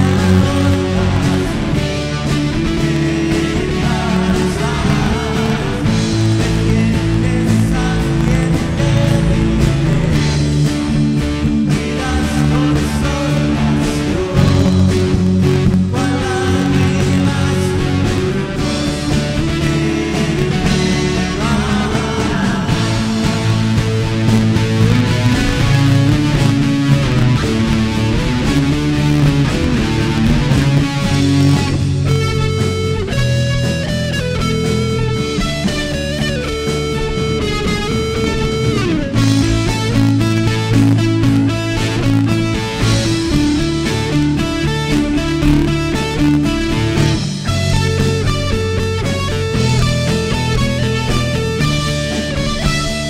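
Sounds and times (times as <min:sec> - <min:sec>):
instrumental band playing: 0:00.0 - 0:53.0.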